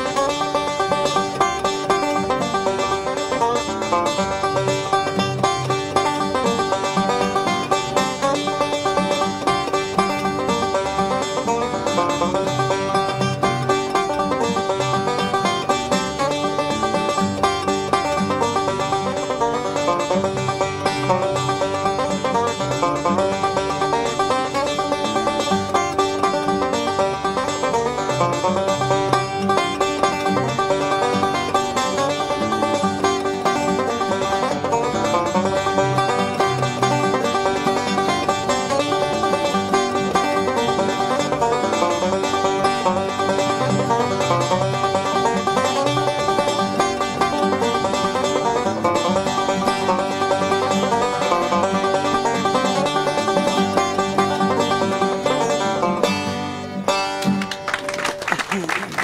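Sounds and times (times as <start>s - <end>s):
banjo playing: 0.0s - 59.0s.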